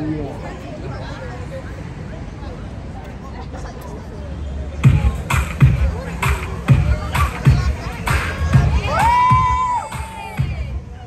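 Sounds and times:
dance track over loudspeakers: 0:04.8 - 0:11.0
crowd cheering: 0:06.2 - 0:10.8
high-pitched shout: 0:08.6 - 0:10.7.

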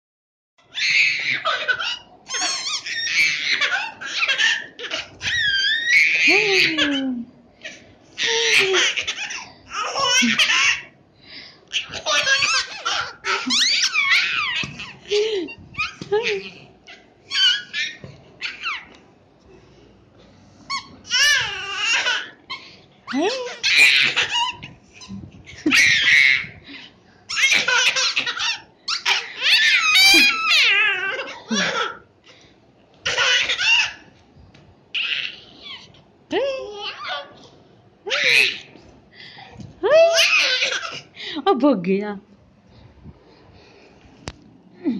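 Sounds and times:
toddler laughing and squealing: 0:00.7 - 0:10.9, 0:11.7 - 0:18.9, 0:20.7 - 0:26.6, 0:27.3 - 0:32.0, 0:33.0 - 0:34.1, 0:34.9 - 0:36.0, 0:38.1 - 0:38.8, 0:39.9 - 0:41.1.

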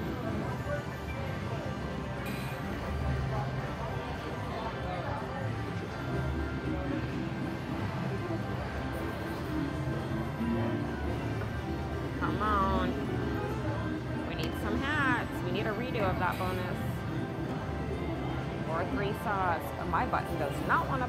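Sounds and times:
casino chatter: 0:00.0 - 0:21.0.

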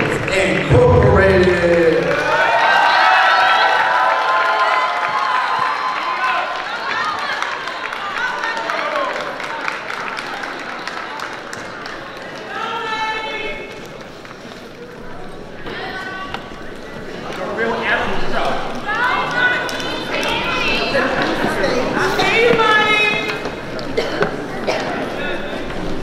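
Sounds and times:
crowd cheering and shouting: 0:00.0 - 0:10.7.

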